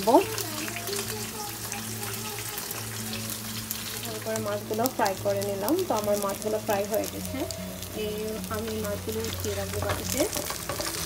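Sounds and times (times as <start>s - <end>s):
fish sizzling in hot oil: 0.0s - 11.0s.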